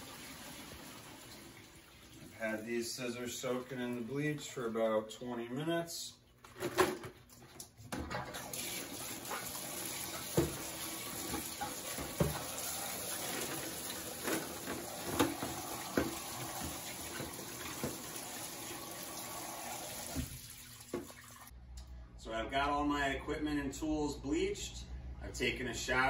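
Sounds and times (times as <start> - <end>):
faucet running water into bucket: 0.0 - 2.4, 8.4 - 21.5.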